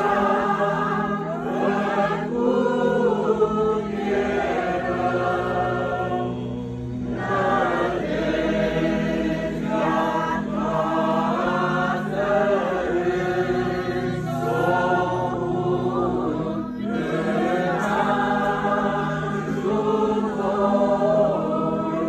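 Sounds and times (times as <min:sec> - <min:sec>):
low held drone note: 0:00.0 - 0:13.0
group of voices singing a hymn: 0:00.0 - 0:22.0.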